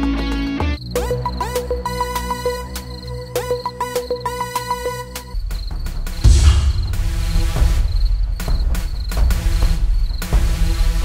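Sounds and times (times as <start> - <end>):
crickets chirping: 0.8 - 11.0
low rumbling drone: 6.2 - 8.8.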